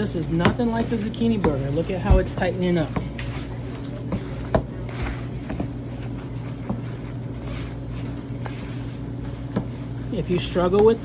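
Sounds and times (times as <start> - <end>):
hands kneading mixture squelching: 0.0 - 11.0
steady low hum: 0.0 - 11.0.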